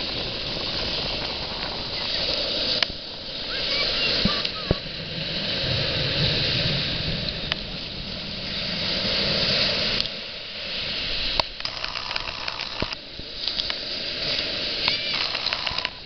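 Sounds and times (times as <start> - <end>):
ocean surf breaking: 0.0 - 16.0.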